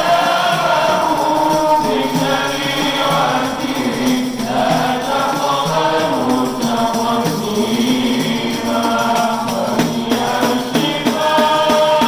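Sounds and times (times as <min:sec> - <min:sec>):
frame drum beat: 0:00.0 - 0:12.0
male voices chanting devotional song: 0:00.0 - 0:12.0.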